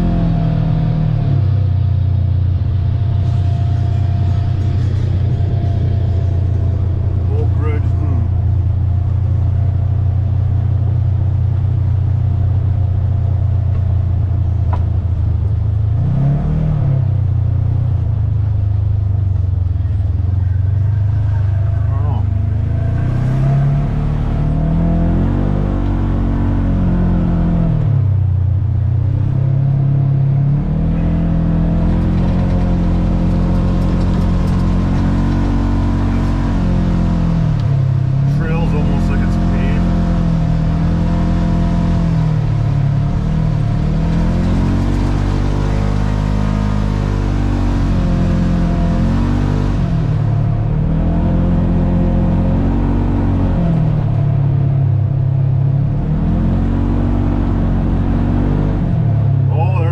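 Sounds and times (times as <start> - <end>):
vehicle engine revving: 0.0 - 59.9.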